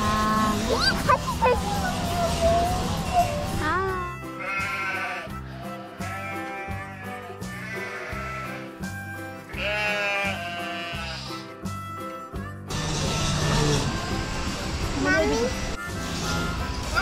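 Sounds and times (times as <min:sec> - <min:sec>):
background music with steady beat: 0:00.0 - 0:17.0
sheep bleating: 0:04.2 - 0:08.8, 0:09.5 - 0:11.5.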